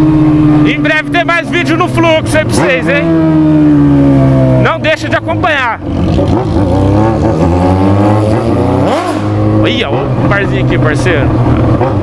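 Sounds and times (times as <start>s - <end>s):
motorcycle engine running: 0.0s - 12.0s.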